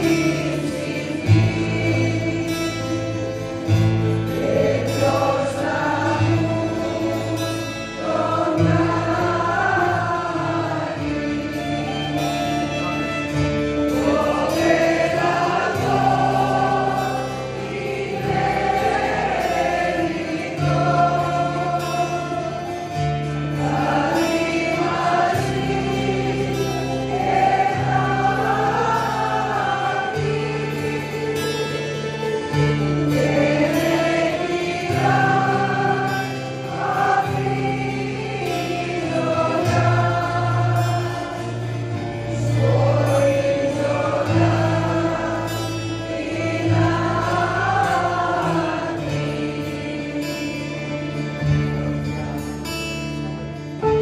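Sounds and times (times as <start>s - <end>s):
bass long held notes: 0.0s - 54.0s
bouzoukis violin and accordions: 0.0s - 54.0s
mixed choir singing: 0.0s - 54.0s.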